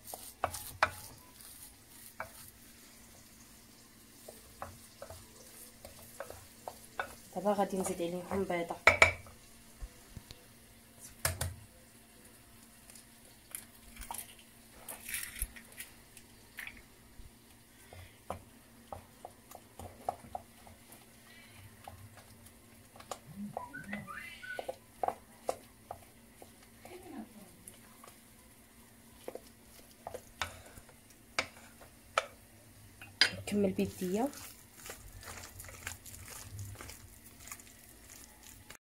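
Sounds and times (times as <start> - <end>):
soft mixing noises: 0.0 - 38.8
eggs tapping on glass bowl: 8.8 - 9.3.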